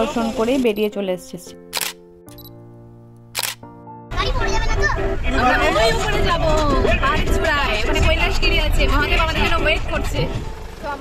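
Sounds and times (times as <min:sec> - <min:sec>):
camera shutter clicks: 0:01.7 - 0:02.5, 0:03.3 - 0:03.6.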